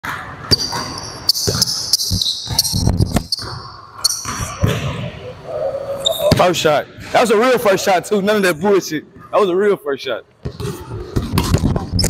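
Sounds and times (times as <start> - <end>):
high-pitched shoe squeaks: 0.5 - 4.4.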